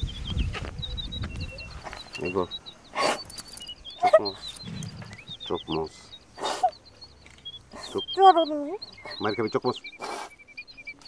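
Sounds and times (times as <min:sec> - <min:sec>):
small birds chirping: 0:00.0 - 0:11.0
woman crying: 0:07.8 - 0:09.2.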